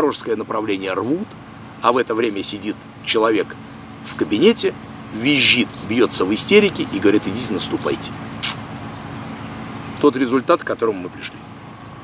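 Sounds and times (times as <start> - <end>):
short hiss: 8.4 - 8.6.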